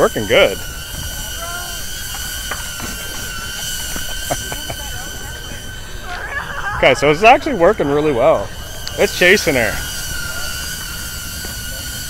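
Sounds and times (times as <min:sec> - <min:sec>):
drone propellers whining: 0:00.0 - 0:12.0.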